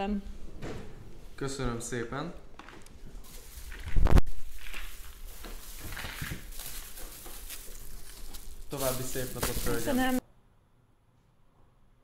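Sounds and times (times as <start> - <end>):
small items being handled: 2.6 - 10.2
bag rustling: 2.7 - 10.2.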